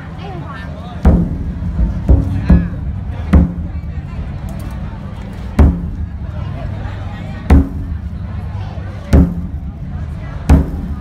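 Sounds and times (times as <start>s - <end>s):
deep barrel drum strikes: 1.0s - 4.3s, 5.6s - 6.4s, 7.4s - 8.2s, 9.1s - 9.8s, 10.4s - 11.0s.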